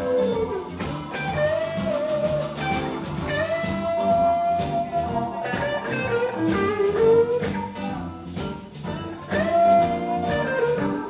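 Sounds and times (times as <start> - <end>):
electric guitar solo: 0.0 - 8.2, 8.9 - 11.0
electric bass: 0.0 - 11.0
keyboard: 0.0 - 11.0
steady drum beat: 0.0 - 11.0.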